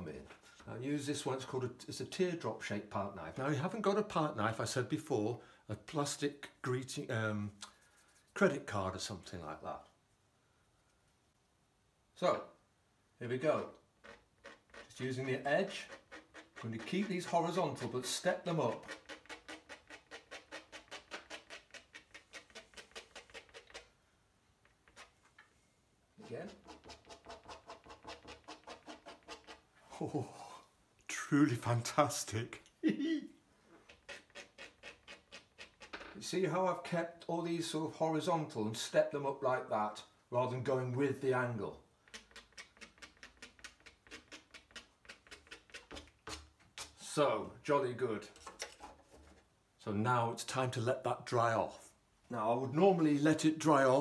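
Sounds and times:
palette knife scraping paper: 14.0 - 23.9, 26.2 - 29.6, 33.8 - 35.9, 42.1 - 47.0.

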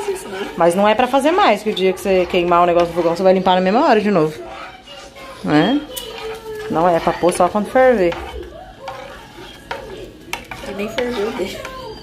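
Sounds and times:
spoon stirring porridge in saucepan: 0.0 - 12.0.

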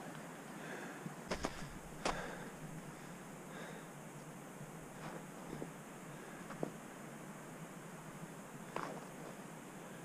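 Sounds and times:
steady low hiss: 0.0 - 10.0.

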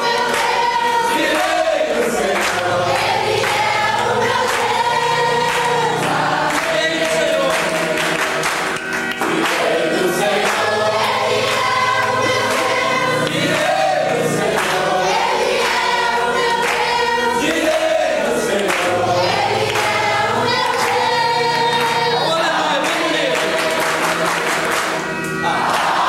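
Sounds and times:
congregation singing: 0.0 - 26.0.

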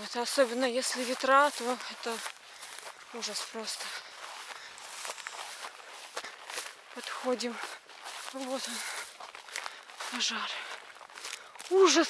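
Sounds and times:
footsteps through dry grass: 0.0 - 12.0.

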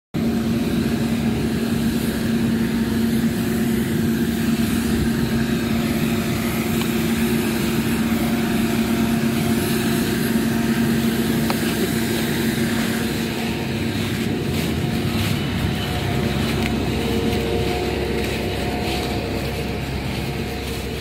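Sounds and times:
street sweeper running: 0.1 - 21.0.

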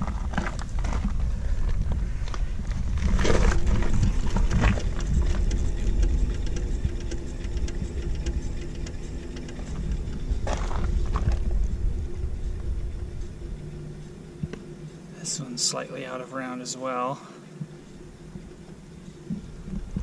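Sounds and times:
wheel spinning on bearing: 3.0 - 11.8.

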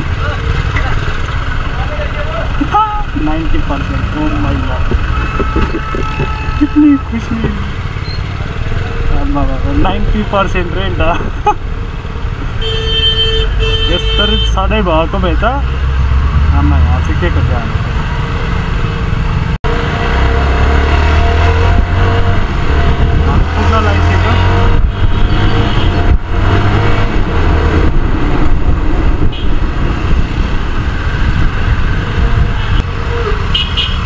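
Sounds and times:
heavy low rumble: 21.4 - 32.8.

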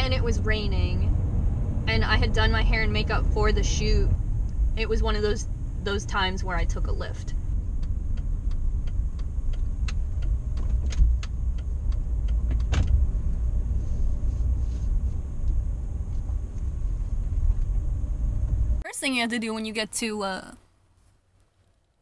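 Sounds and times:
van engine and road noise: 0.0 - 19.2.

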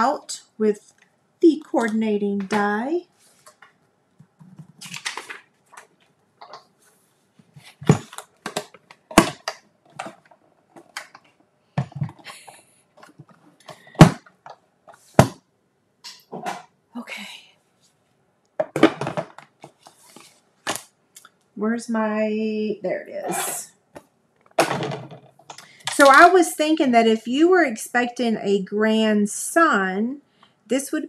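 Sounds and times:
paper rustling: 4.4 - 9.1
plastic plates knocking and clicking: 18.6 - 19.8.

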